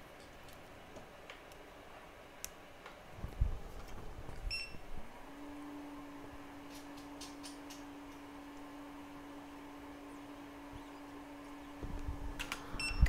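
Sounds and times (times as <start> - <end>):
workshop equipment humming: 0.0 - 13.0.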